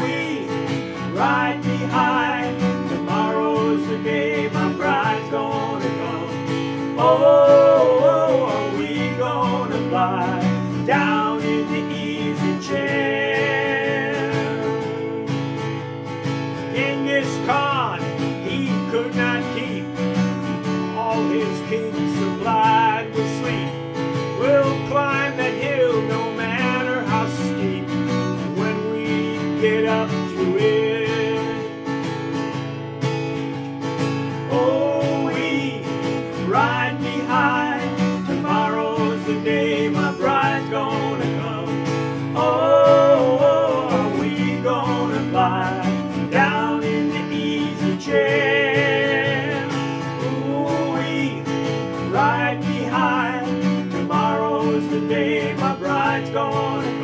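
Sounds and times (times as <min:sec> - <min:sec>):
man singing: 0:00.0 - 0:15.8, 0:16.6 - 0:32.0, 0:34.4 - 0:57.0
acoustic guitar strumming: 0:00.0 - 0:57.0.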